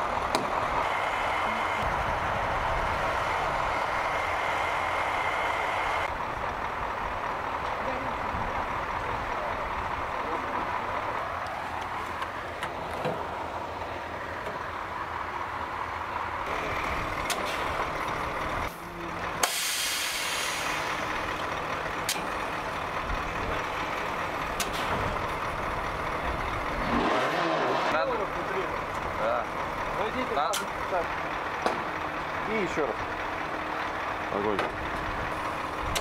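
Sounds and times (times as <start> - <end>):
fuel pumping machinery: 0.0 - 36.0
truck engines running: 0.0 - 36.0
loud hiss of released air: 19.4 - 20.8.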